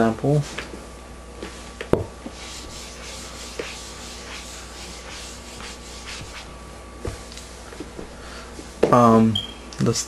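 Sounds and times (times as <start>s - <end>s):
eraser rubbing on whiteboard: 2.3s - 6.5s.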